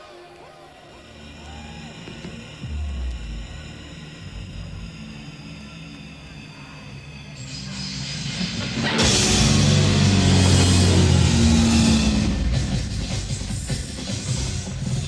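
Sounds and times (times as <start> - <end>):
low sustained bass notes: 1.2 - 13.5
loud full-band entry: 2.1 - 15.0
heavy low note: 8.3 - 13.4.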